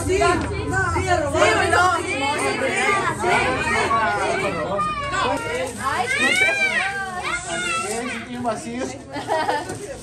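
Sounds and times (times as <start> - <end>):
adults and children talking: 0.0 - 10.0.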